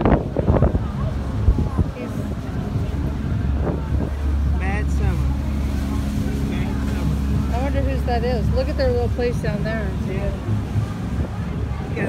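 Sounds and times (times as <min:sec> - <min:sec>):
ship engine rumble: 0:00.0 - 0:12.0.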